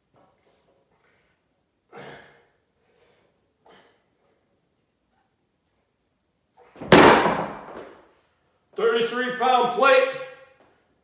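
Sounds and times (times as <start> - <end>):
iron weight plate crashing on mat: 6.8 - 8.0.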